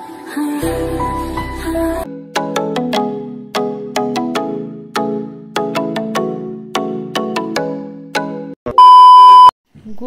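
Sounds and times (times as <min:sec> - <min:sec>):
background music: 0:00.0 - 0:08.6
loud electronic beep: 0:08.7 - 0:09.5.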